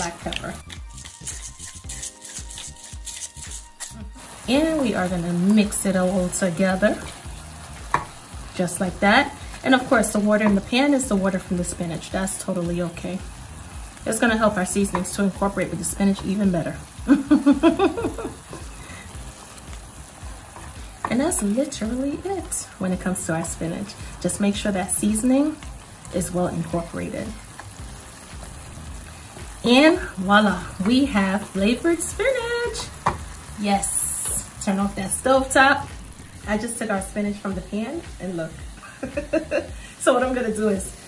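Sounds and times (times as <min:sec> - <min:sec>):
pepper grinder grinding: 0:00.0 - 0:04.2
spatula stirring: 0:00.0 - 0:11.8, 0:17.8 - 0:26.4, 0:27.2 - 0:33.5
soft background music: 0:00.0 - 0:41.0
spinach sizzling in a skillet: 0:00.0 - 0:41.0
woman laughing: 0:17.0 - 0:18.8, 0:38.7 - 0:39.9.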